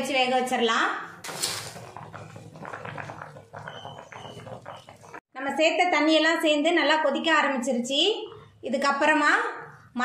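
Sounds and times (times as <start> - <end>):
gravy bubbling and gurgling: 1.2 - 5.3.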